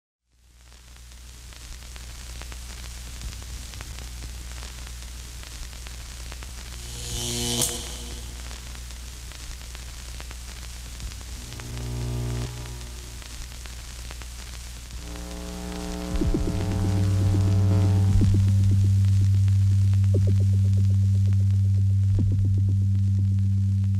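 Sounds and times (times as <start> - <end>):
static hiss: 0.3 - 23.9
low electronic drone: 6.7 - 8.8, 11.3 - 13.3, 15.0 - 23.9.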